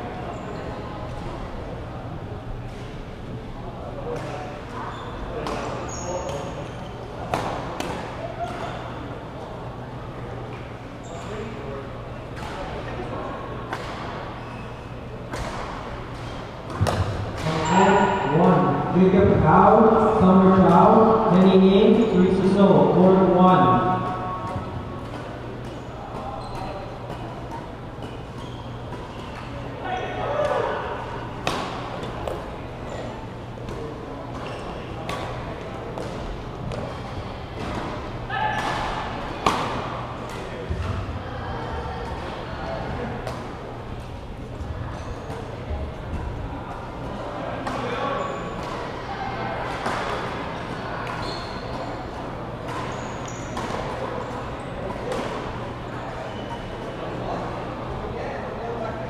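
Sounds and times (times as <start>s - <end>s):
racket hitting shuttlecock: 16.7s - 17.5s, 31.4s - 32.4s
people talking: 16.8s - 24.7s.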